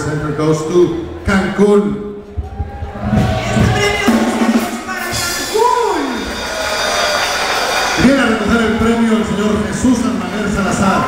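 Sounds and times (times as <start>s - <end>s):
audience applauding in a hall: 5.9s - 11.0s.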